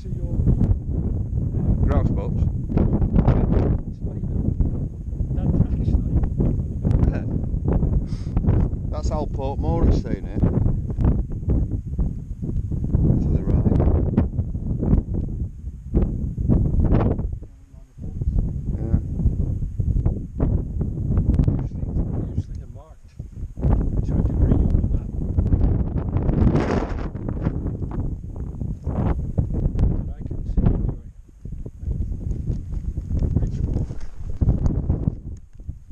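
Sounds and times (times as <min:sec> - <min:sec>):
wind buffeting microphone: 0:00.0 - 0:35.9.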